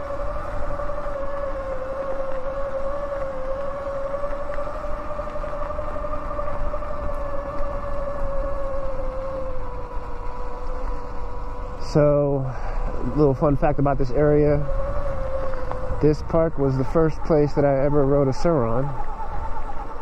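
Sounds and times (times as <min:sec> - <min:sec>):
electric motor whine: 0:00.0 - 0:20.0
wind: 0:00.0 - 0:20.0.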